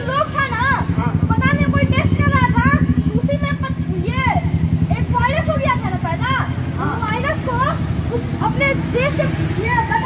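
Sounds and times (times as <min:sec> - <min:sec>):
engine idling: 0:00.0 - 0:10.0.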